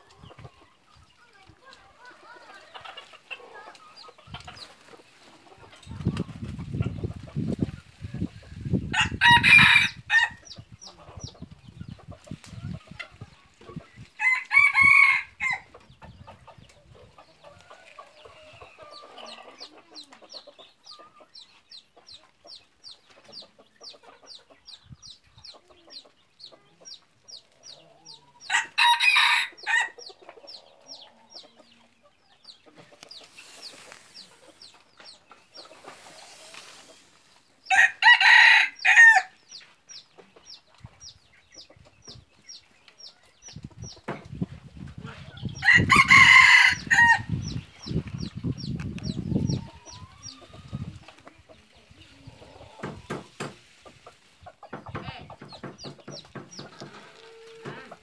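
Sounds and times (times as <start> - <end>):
roosters crowing: 8.8 - 10.5, 14.0 - 15.7, 28.1 - 30.0, 37.6 - 39.4, 45.4 - 48.0, 55.2 - 58.0.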